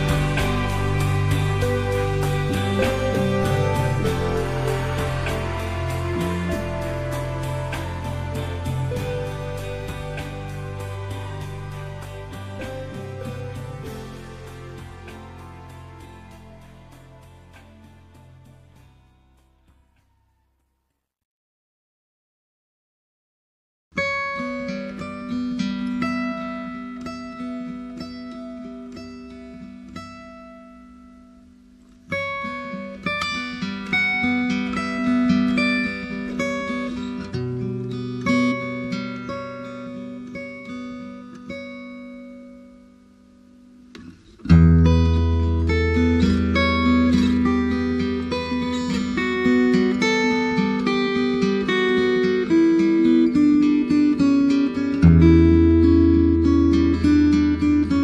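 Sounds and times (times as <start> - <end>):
acoustic guitar picking: 0.0 - 18.9, 24.0 - 58.0
deep bass notes: 0.0 - 19.9.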